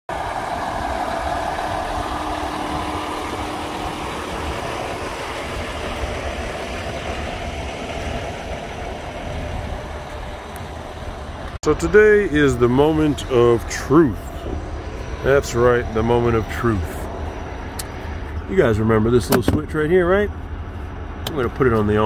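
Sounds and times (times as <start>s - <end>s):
high-pitched whine: 0.1s - 19.3s
vehicle engine rumbling: 0.1s - 22.0s.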